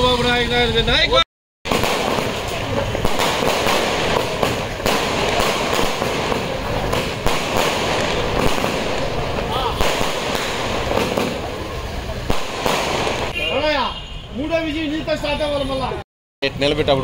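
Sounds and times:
fireworks crackling: 1.6 - 13.5
sharp firework pops: 1.7 - 13.4.

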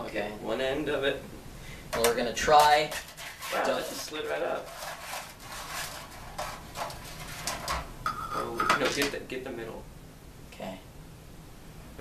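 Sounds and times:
spatula scraping metal baking sheet: 2.1 - 9.1.

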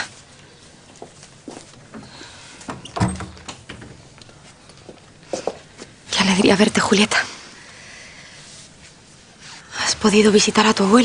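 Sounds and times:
wooden door closing with thud: 2.7 - 4.0.

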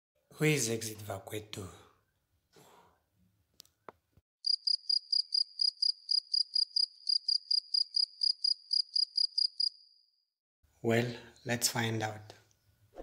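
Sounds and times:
cricket chirping: 4.4 - 10.2.

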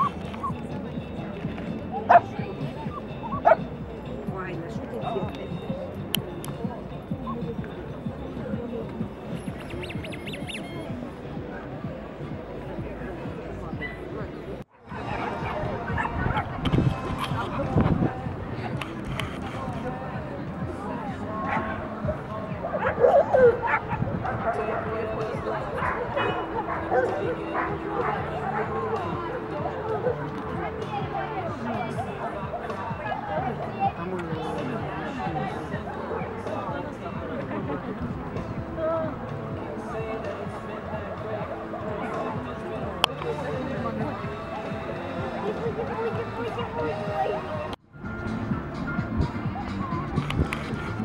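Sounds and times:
crowd chatter: 0.0 - 51.0
dog barking: 22.7 - 25.0, 25.8 - 28.8.

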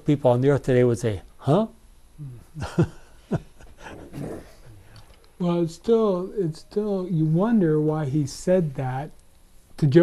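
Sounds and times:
man laughing: 2.2 - 4.2.

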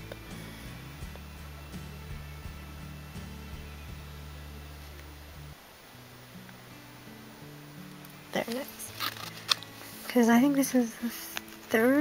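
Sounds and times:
quiet music of low held notes: 0.0 - 12.0.

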